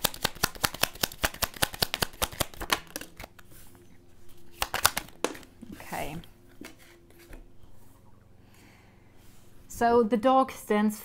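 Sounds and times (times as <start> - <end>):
cards shuffling: 0.0 - 3.5, 4.4 - 5.6, 6.5 - 7.5
card taps: 4.6 - 5.5.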